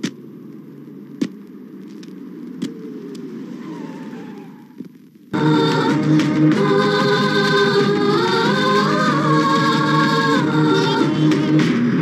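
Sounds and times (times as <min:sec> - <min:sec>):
street traffic hum: 0:00.0 - 0:12.0.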